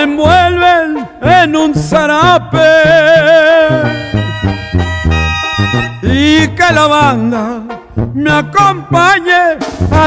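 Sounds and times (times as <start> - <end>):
trumpets and trombones: 0.0 - 10.0
tuba bass line: 0.0 - 10.0.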